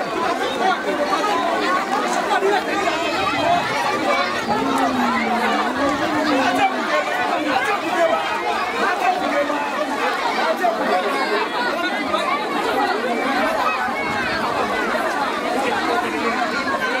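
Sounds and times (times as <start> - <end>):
crowd chattering: 0.0 - 17.0.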